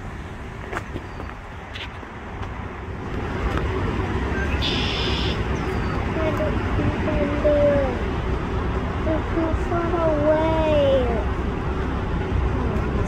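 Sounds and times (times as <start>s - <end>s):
low outdoor rumble: 0.0s - 13.0s
buzzy high-pitched call: 4.4s - 6.0s.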